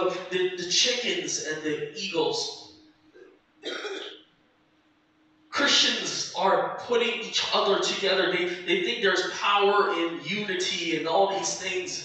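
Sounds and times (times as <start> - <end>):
faint steady hum: 0.0 - 12.0
man clearing throat: 3.6 - 4.1.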